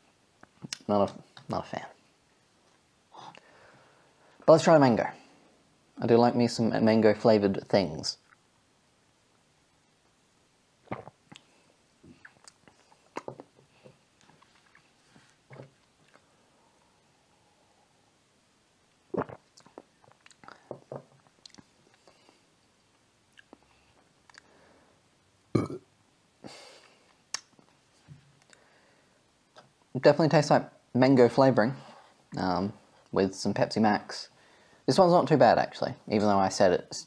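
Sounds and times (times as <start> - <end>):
swallowing sounds: 10.9 - 13.6, 19.1 - 22.2
man sipping a fizzy drink: 19.1 - 20.8.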